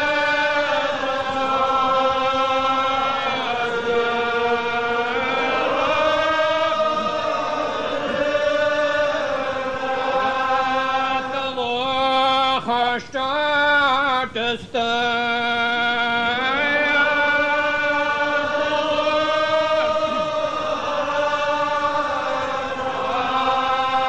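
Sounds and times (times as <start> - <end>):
congregation singing a psalm: 0.0 - 24.0.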